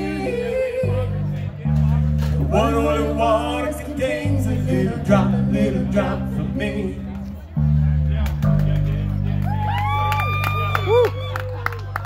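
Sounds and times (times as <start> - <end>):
electric guitars and bass ringing chord: 0.0 - 11.6.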